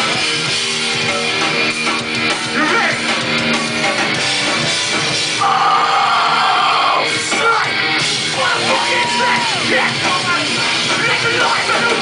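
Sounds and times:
electric guitars playing chords: 0:00.0 - 0:12.0.

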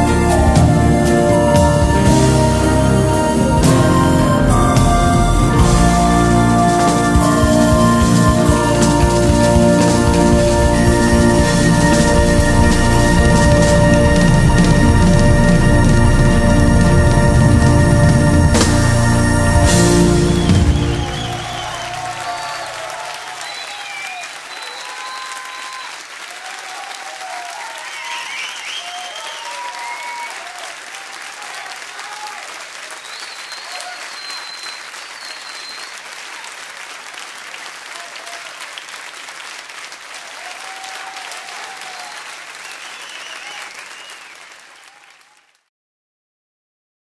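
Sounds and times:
audience applauding and cheering: 0:00.0 - 0:45.7
audience shouts: 0:20.2 - 0:32.9, 0:33.5 - 0:34.6, 0:40.2 - 0:42.4.

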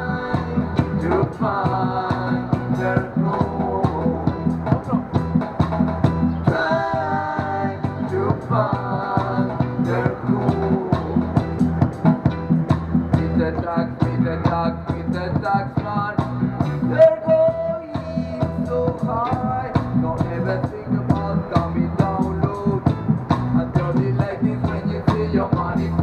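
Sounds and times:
reggae band playing live: 0:00.0 - 0:26.0.

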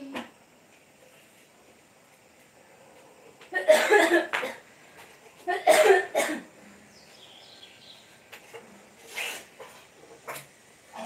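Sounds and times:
person coughing: 0:03.6 - 0:04.6, 0:05.5 - 0:06.5.

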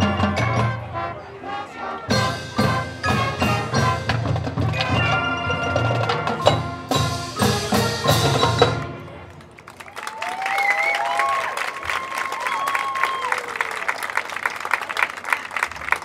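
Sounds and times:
marching band playing: 0:00.0 - 0:09.8
marimba and drum strikes: 0:02.2 - 0:09.1
crowd cheering and clapping: 0:09.0 - 0:16.0.

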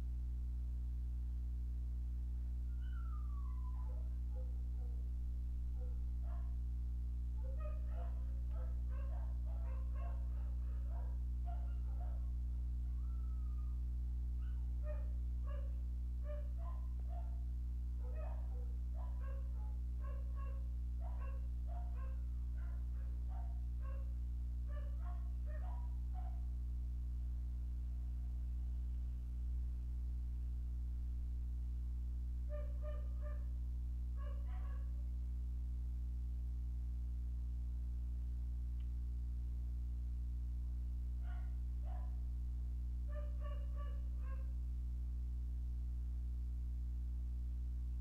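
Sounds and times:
low electrical hum: 0:00.0 - 0:48.0
dog barking in short yaps: 0:07.4 - 0:12.3, 0:18.0 - 0:26.4, 0:32.5 - 0:33.5, 0:34.2 - 0:35.0, 0:41.2 - 0:42.2, 0:43.1 - 0:44.5.

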